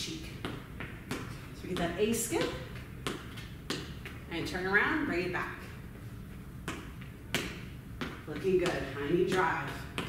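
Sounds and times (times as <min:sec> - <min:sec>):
low room hum: 0:00.0 - 0:10.0
sneaker footfalls: 0:00.2 - 0:04.4, 0:06.6 - 0:10.0.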